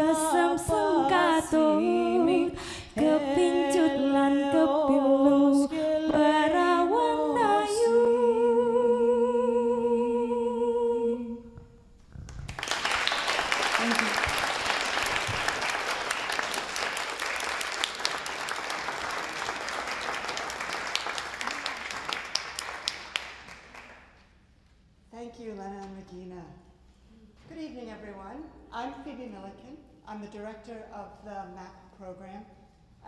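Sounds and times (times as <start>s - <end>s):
women singing in harmony: 0.0s - 11.8s
audience applauding: 12.3s - 24.0s.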